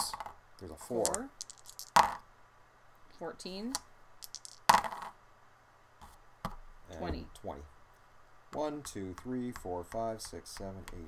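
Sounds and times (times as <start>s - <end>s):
dice landing on game board: 0.0s - 2.2s, 3.7s - 5.2s.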